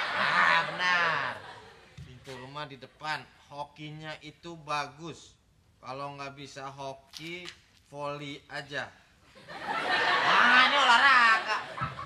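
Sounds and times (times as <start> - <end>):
studio audience laughter: 0.0 - 2.0, 9.4 - 12.0.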